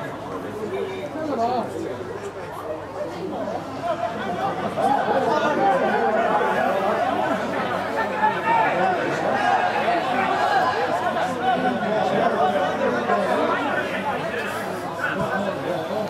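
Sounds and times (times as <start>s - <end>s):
indistinct chatter of voices: 0.0s - 16.0s.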